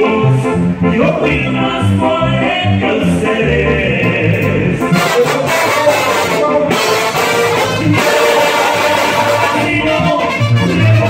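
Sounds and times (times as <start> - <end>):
live band with brass and keyboard: 0.0 - 11.0
man singing long notes: 0.0 - 11.0.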